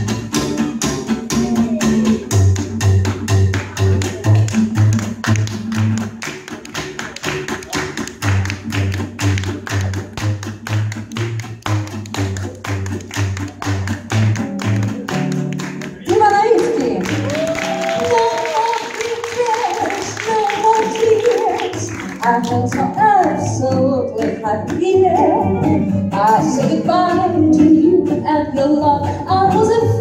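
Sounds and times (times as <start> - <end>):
acoustic guitars chopping rhythm: 0.0 - 30.0
walking double bass: 0.0 - 30.0
woman's voice: 16.1 - 17.2, 17.9 - 25.4, 26.2 - 28.6.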